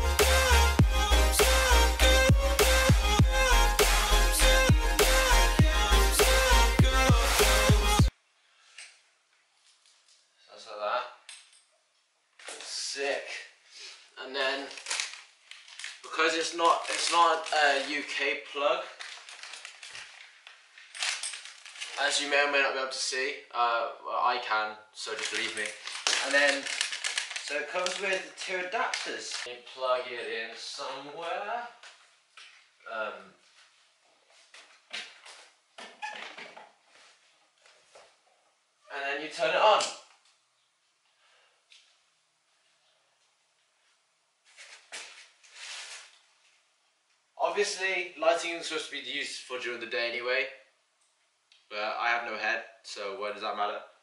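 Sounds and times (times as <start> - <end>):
wordless vocal sounds: 0.0 - 8.1
rustling and scraping: 14.5 - 18.3, 18.9 - 22.3, 44.4 - 46.6
plastic and metal parts clinking: 14.7 - 17.9, 18.9 - 22.0, 25.1 - 29.5.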